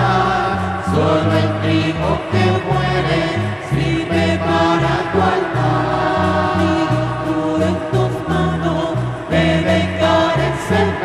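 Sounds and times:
choir singing a hymn: 0:00.0 - 0:11.0
instrumental accompaniment: 0:00.0 - 0:11.0.

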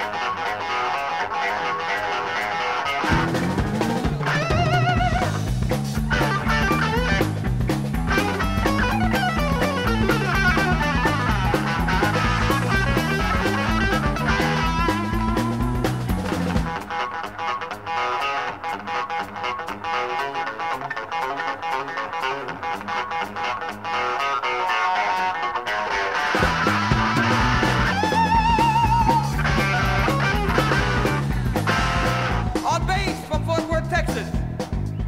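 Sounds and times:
drum kit: 0:00.0 - 0:35.0
electric guitar lead: 0:00.0 - 0:35.0
bass line: 0:03.0 - 0:16.8, 0:26.4 - 0:35.0.

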